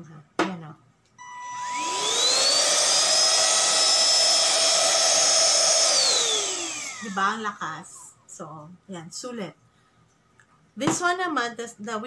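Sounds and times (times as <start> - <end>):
handheld vacuum cleaner motor whine: 1.2 - 7.6.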